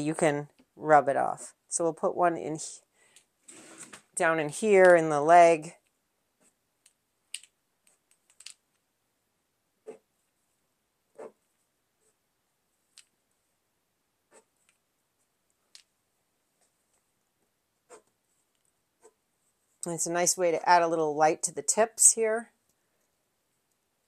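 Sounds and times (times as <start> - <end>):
pen tip scratching on canvas: 11.2 - 11.4, 17.9 - 18.1.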